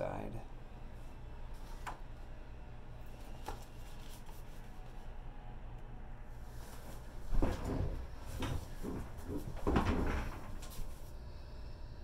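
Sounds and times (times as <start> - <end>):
low steady hum: 0.0 - 12.0
hands rustling book pages: 3.2 - 5.0.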